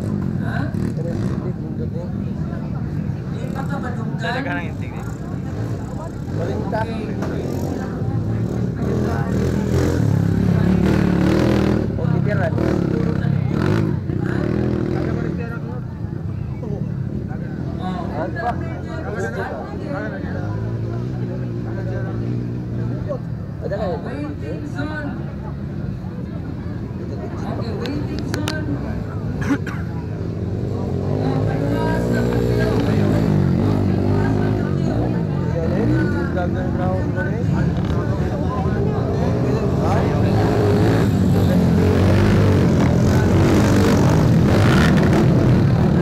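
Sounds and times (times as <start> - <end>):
dirt bike engines running: 0.0 - 46.0
dirt bike engine approaching: 30.2 - 46.0.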